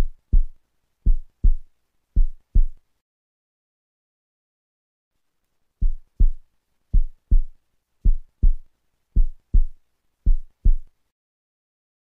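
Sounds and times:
heartbeat thumps: 0.0s - 2.8s, 5.8s - 10.9s.

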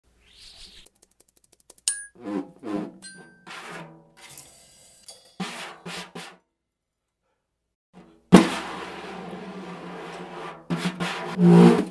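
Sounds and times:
drum roll: 8.3s - 11.9s.

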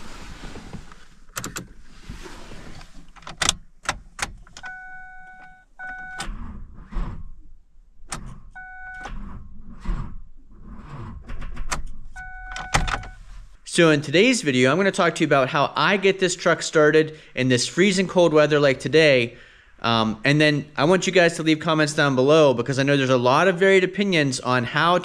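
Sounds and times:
dashboard warning chime beeps: 4.6s - 6.2s, 8.6s - 9.1s, 12.2s - 13.2s.

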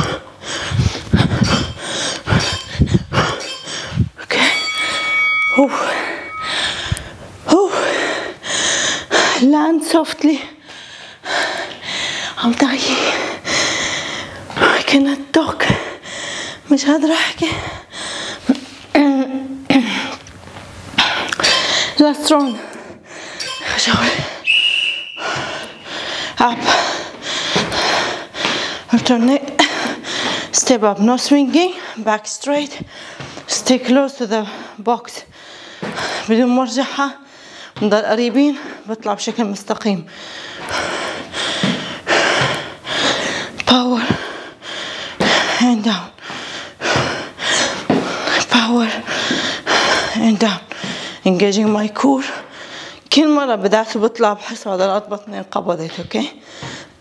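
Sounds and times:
hard breathing: 0.0s - 9.6s, 10.4s - 14.9s, 15.6s - 18.9s, 20.9s - 30.7s, 32.7s - 33.6s, 34.3s - 37.8s, 40.0s - 51.3s, 52.2s - 53.1s, 56.0s - 57.0s
woman panting: 0.0s - 20.2s, 20.9s - 24.5s, 25.2s - 53.2s, 55.8s - 57.0s
high electronic beep: 4.4s - 6.6s.

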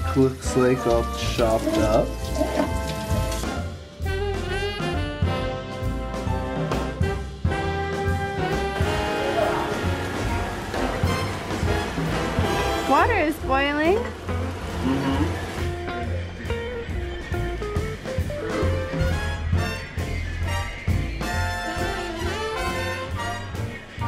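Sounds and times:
jazz music with brass: 0.0s - 24.0s.

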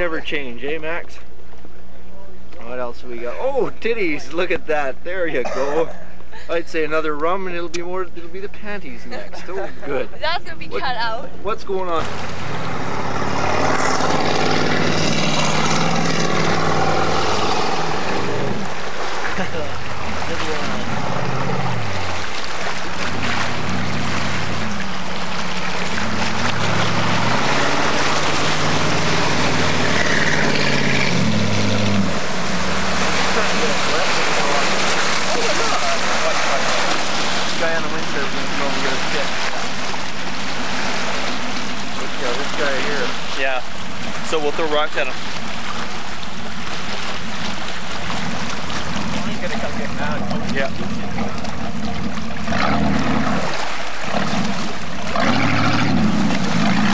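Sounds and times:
speedboat engine running hard: 11.9s - 56.9s
voices: 19.3s - 22.0s, 33.1s - 39.5s, 41.8s - 45.2s, 49.0s - 51.8s.

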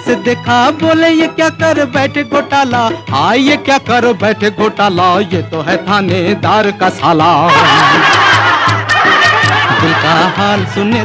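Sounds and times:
band playing: 0.0s - 11.0s
drum beats: 0.0s - 11.0s
man singing: 0.0s - 11.0s
crowd laughing: 7.4s - 10.9s.

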